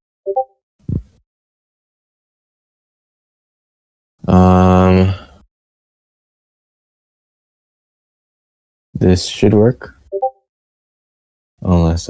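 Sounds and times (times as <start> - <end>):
notification blip: 10.2 - 10.4.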